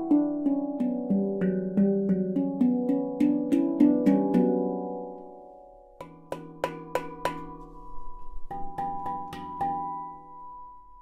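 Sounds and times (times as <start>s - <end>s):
handpan notes ringing: 0.0s - 11.0s.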